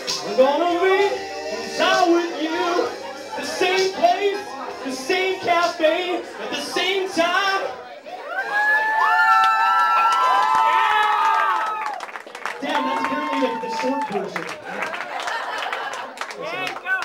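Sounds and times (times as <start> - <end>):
man talking through microphone: 0.0 - 7.8, 12.6 - 14.8
voices holding long notes: 0.0 - 8.8
bar crowd noise: 0.0 - 17.0
people clapping: 8.8 - 17.0.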